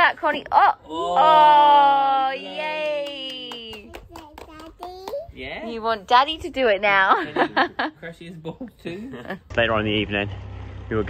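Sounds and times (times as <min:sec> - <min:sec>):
quick hand claps: 0:02.9 - 0:05.2.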